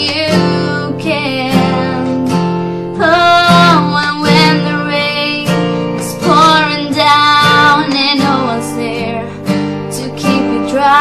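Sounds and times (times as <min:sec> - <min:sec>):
strummed acoustic guitar: 0:00.0 - 0:11.0
woman singing: 0:00.0 - 0:11.0.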